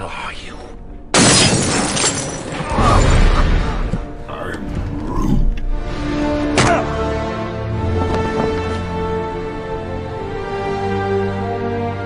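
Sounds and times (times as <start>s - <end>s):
film score music: 0.0s - 12.0s
gravelly growled voice: 4.3s - 5.7s.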